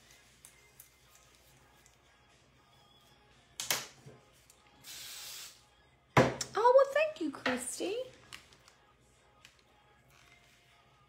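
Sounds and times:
aerosol hairspray hissing: 4.8 - 5.6
sharp spray burst: 4.8 - 5.6.

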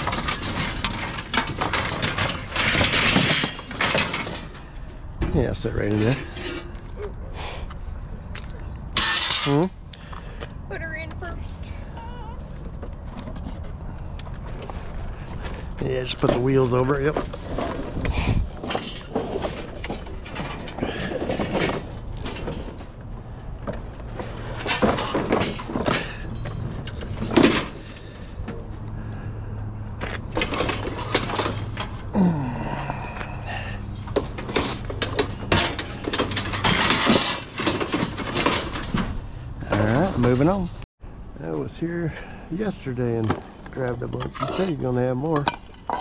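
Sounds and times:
knocks and metal clatter: 0.0 - 7.2, 8.8 - 10.2, 12.5 - 40.9, 42.9 - 46.0.

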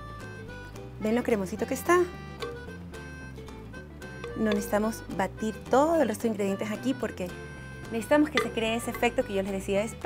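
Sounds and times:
plucked string notes: 2.0 - 6.4, 7.0 - 9.6.

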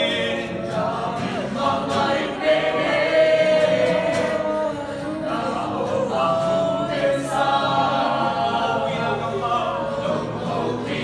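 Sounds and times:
acoustic guitar: 0.0 - 11.0
group singing worship song: 0.0 - 11.0.

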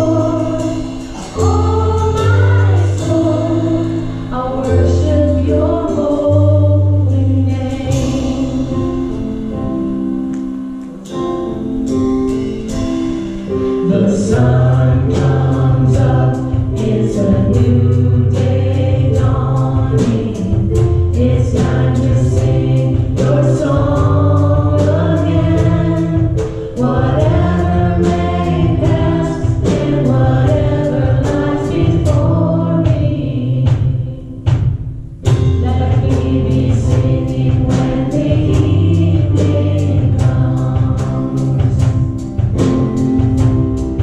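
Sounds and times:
women singing into microphones: 0.0 - 8.9, 13.9 - 34.2, 35.6 - 41.8
steady drum beat: 0.0 - 10.1, 11.0 - 44.0
keyboard playing: 0.0 - 44.0
low bass notes: 0.0 - 44.0.

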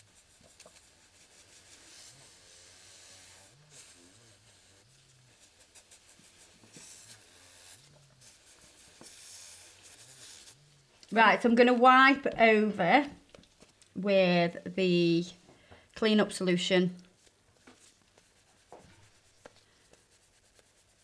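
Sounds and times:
brush against nail: 0.0 - 11.2, 17.2 - 21.0.

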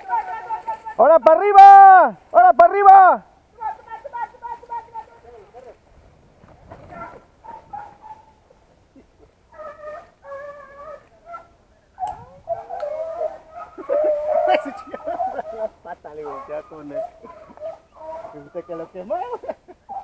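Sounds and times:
dogs yelping: 6.8 - 8.6, 9.2 - 20.0.

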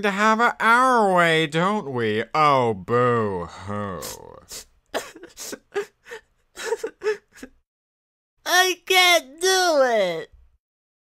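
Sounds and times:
cartoon voice gasping and whimpering: 3.5 - 6.2.

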